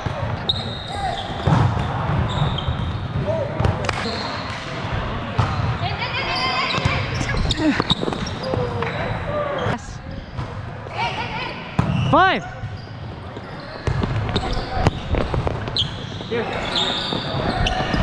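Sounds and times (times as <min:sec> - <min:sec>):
players shouting and chatting: 0:00.0 - 0:18.0
ball striking court: 0:01.4 - 0:04.7, 0:11.8 - 0:12.8, 0:13.8 - 0:16.0.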